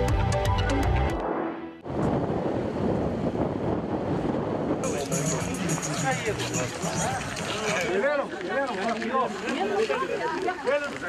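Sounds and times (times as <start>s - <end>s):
wind buffeting microphone: 1.8s - 4.9s
music sting: 4.8s - 7.9s.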